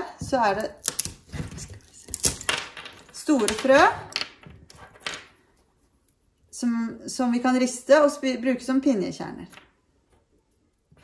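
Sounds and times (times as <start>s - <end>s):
pine cone scales cracking: 0.6s - 2.5s.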